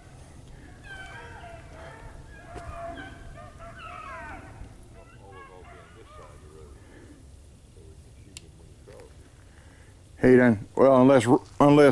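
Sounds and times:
dogs baying: 0.6 - 7.1.

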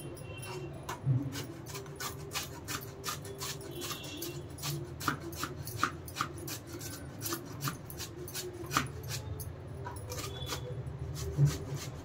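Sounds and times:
pumpkin grated on metal grater: 0.5 - 12.0.

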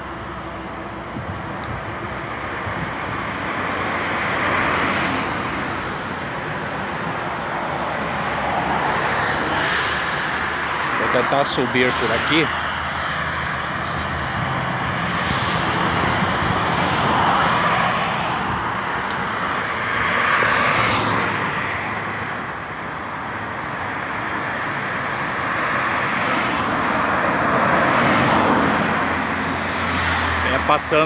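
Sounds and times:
vehicles passing on highway: 0.0 - 31.0.

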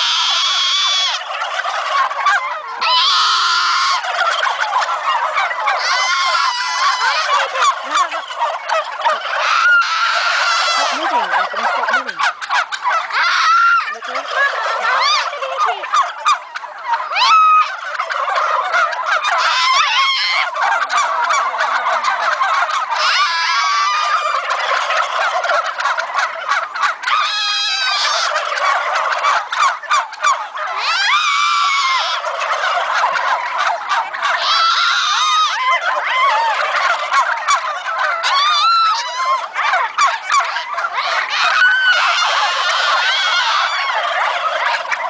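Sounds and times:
turkeys gobbling: 0.0 - 45.0.

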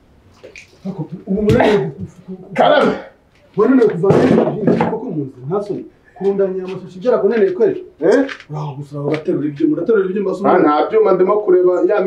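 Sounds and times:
man straining vocally: 0.9 - 3.2.

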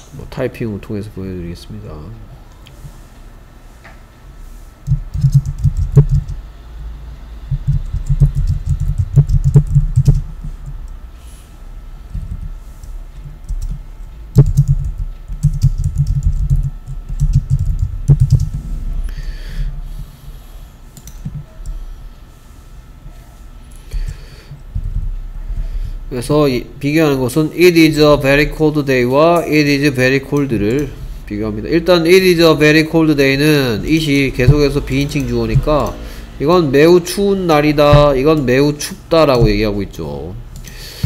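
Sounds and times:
keyboard typing: 4.8 - 6.5, 7.5 - 10.9, 12.1 - 18.6, 33.9 - 36.0.

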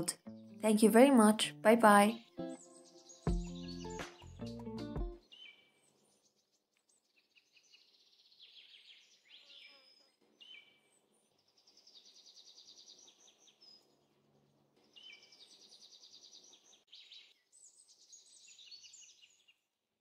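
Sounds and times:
songbird trills: 2.0 - 4.6, 5.2 - 10.8.

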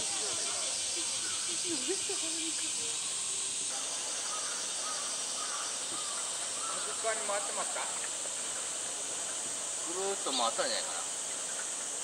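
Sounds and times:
cicada chorus drone: 0.0 - 12.0.

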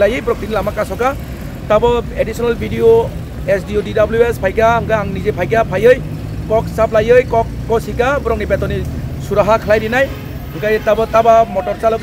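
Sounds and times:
low rumble of vehicles: 0.0 - 12.0
man speaking: 0.0 - 12.0.

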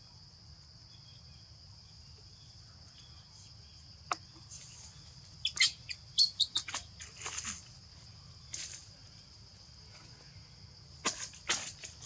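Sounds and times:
sharp chirps and clicks: 5.4 - 6.9.

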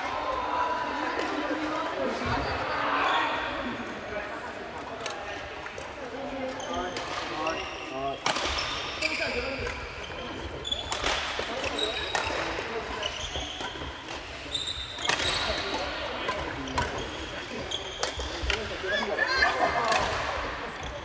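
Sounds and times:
players' voices: 0.0 - 21.0
sneakers squeaking on wooden floor: 6.4 - 19.1
racket striking shuttlecock: 10.9 - 12.6.

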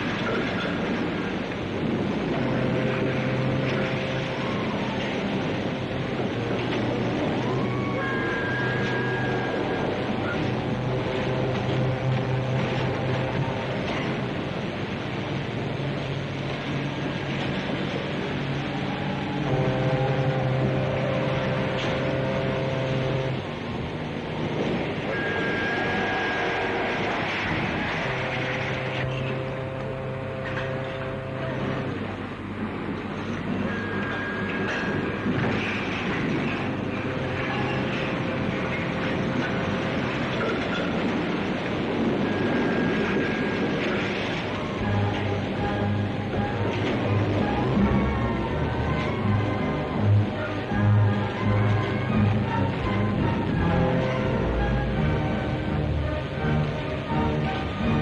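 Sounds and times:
ship whistles and sirens: 0.0 - 58.0
crowd cheering: 2.4 - 14.8, 18.2 - 21.6, 25.0 - 30.3.

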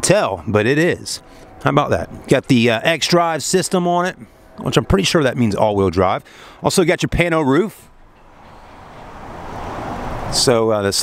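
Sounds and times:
passing vehicle road noise: 0.0 - 11.0.

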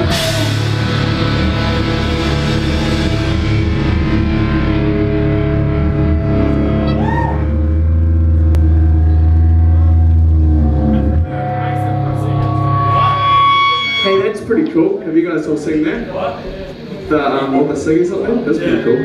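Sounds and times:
bass note: 0.0 - 19.0
distorted electric guitar chord: 0.0 - 19.0.

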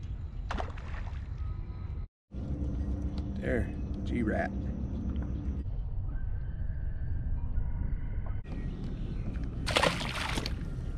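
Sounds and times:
fish splashing in water: 9.7 - 10.6.

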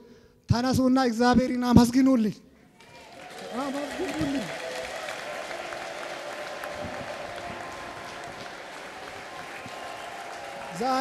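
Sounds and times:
congregation applauding: 2.7 - 11.0.

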